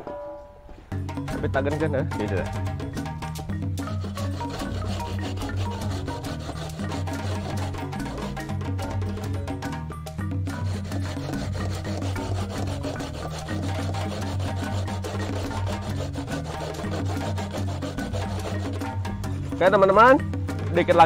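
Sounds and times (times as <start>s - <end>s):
background music: 0.0s - 21.0s
coconut scraped on grater: 3.8s - 8.4s, 10.5s - 19.2s.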